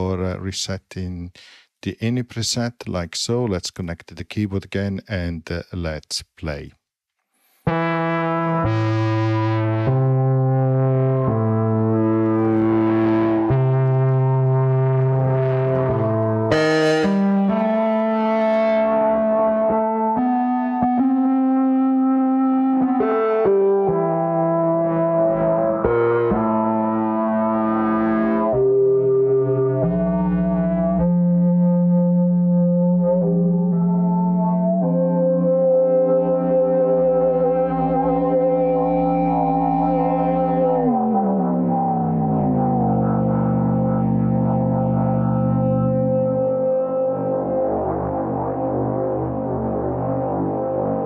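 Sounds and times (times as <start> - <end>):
synthesizer held notes: 7.7 - 51.0.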